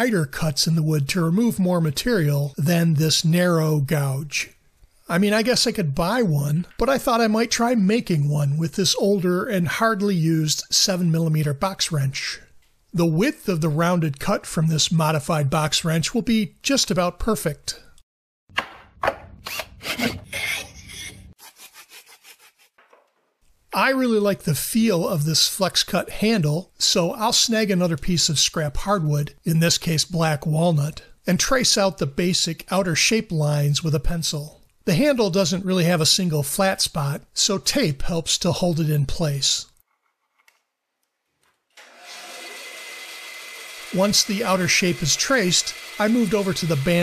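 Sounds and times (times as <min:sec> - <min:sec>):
bandsaw running: 0:19.4 - 0:22.7, 0:41.8 - 0:47.0
hand tool rasping on wood: 0:21.4 - 0:22.8.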